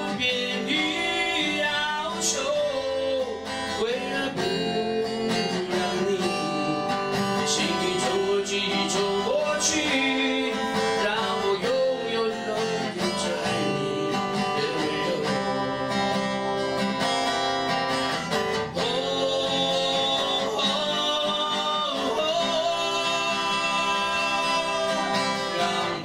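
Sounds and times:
man singing into a microphone: 0.0 - 16.3, 18.6 - 26.0
acoustic guitar: 0.0 - 26.0.

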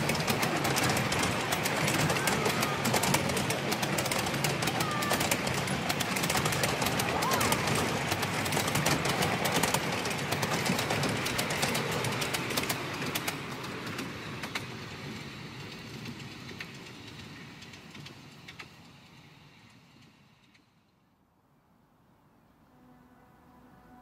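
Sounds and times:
miniature train carriages rattling: 0.0 - 20.6
wheels clicking over rail joints: 0.0 - 21.0.

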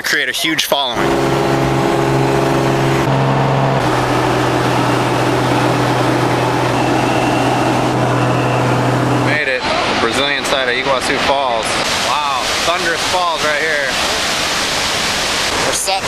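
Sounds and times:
propeller aircraft engine droning: 1.0 - 13.2.

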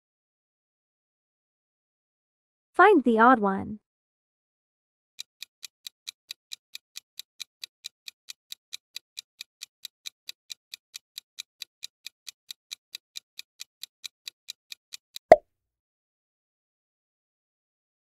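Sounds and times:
clock-like ticking: 5.2 - 15.0.

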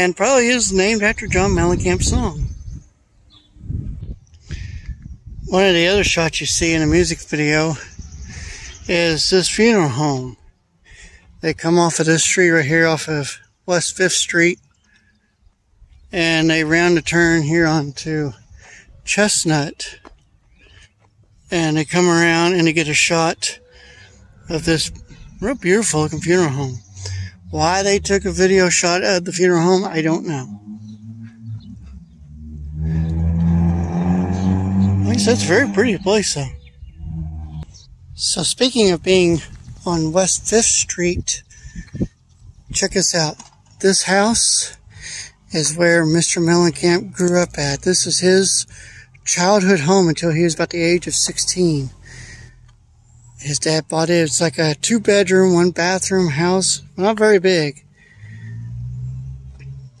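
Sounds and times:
vehicle engine droning: 16.0 - 60.0
car driving past: 29.9 - 37.9, 57.8 - 60.0.

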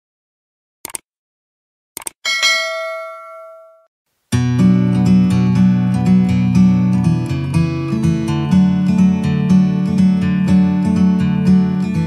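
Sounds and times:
bell ding: 2.2 - 3.9.

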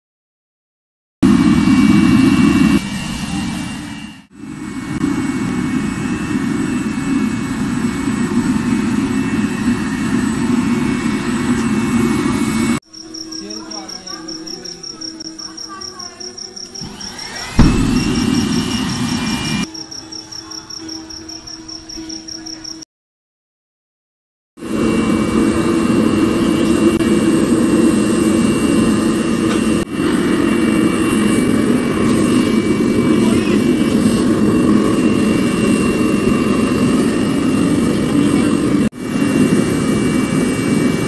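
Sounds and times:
furnace burner roaring: 1.2 - 12.8, 16.7 - 19.7, 24.6 - 41.0
rising whine: 1.2 - 15.4, 16.4 - 19.8, 24.6 - 41.0
high rapidly pulsing tone: 12.9 - 22.4
low hum: 16.9 - 19.7.

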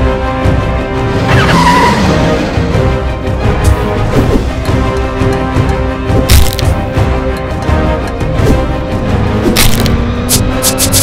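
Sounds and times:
action soundtrack music: 0.0 - 11.0.

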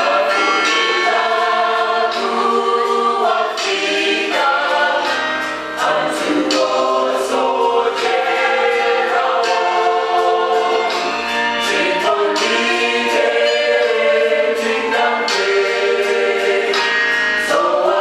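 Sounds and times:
mixed choir singing in harmony: 0.0 - 18.0.

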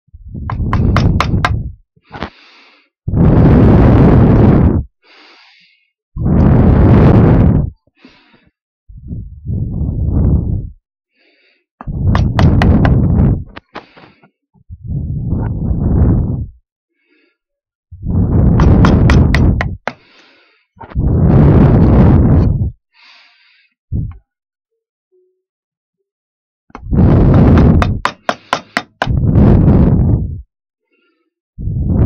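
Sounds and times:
hand tool scraping wood: 18.6 - 20.1, 27.6 - 29.1.

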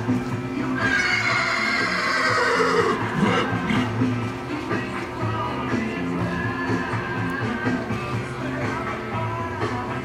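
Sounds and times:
background music: 0.0 - 10.0
horse whinnying: 0.8 - 3.9.

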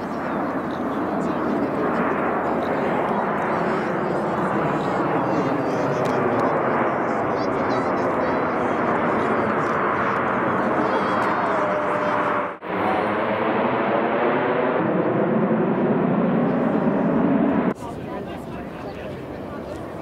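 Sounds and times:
jet engine noise: 0.0 - 20.0.

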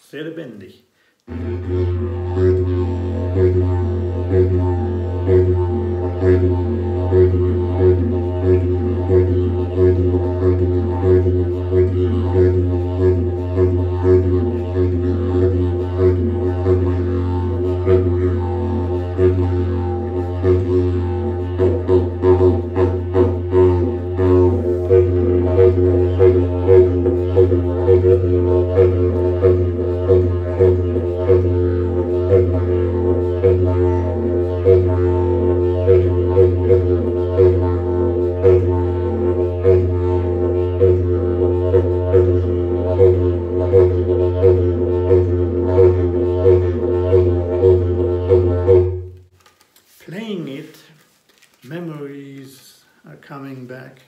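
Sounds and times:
didgeridoo low drone: 1.3 - 49.2.

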